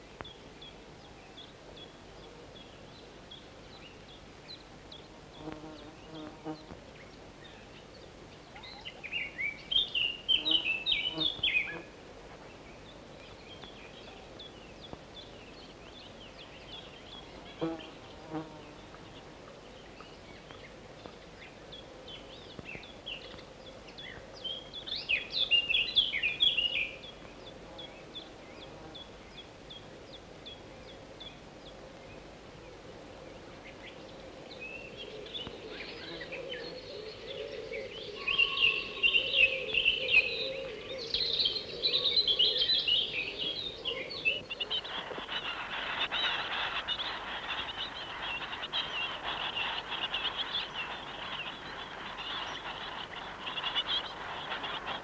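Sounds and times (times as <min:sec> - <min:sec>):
songbird chirping: 0:00.0 - 0:55.0.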